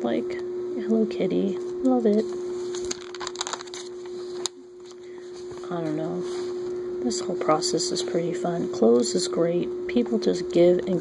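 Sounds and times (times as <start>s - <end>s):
paper page rustling: 2.6s - 6.6s.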